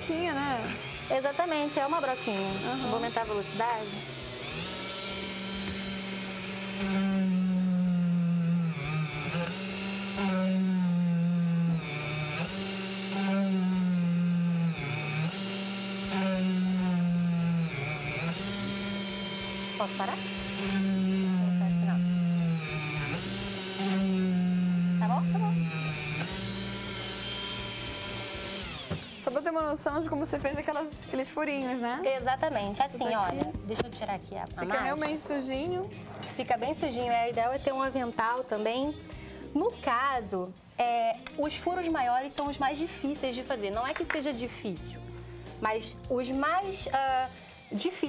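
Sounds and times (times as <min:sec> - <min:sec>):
rotary tool drilling plastic: 0:00.0 - 0:29.5.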